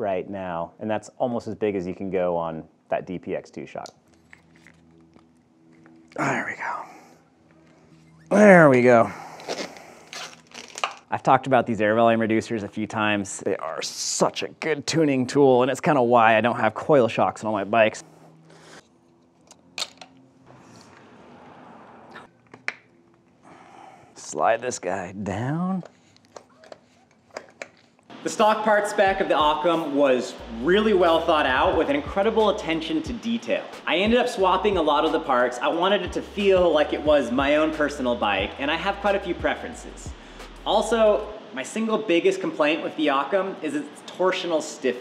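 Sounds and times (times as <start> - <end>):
hands handling bike parts: 26.0 - 28.1.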